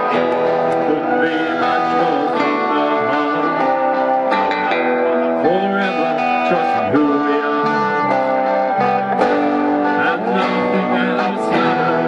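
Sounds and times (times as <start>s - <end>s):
guitars strummed and picked: 0.0s - 12.0s
person singing: 0.0s - 12.0s.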